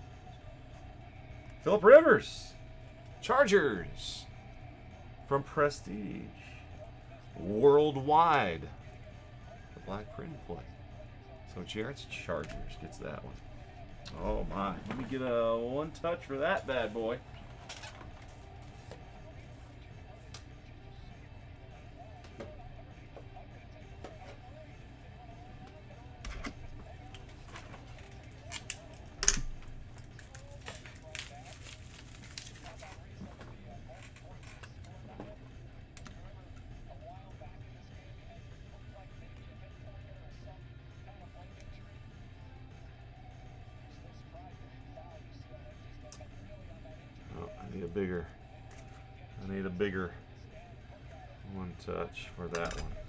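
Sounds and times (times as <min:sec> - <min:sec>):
faint background music: 0:00.0 - 0:53.0
steady low hum: 0:00.0 - 0:53.0.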